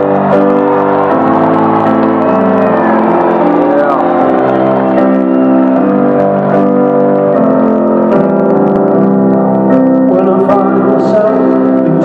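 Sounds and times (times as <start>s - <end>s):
audience shouts and whistles: 0.0s - 8.9s
amplified piano chords: 0.0s - 12.0s.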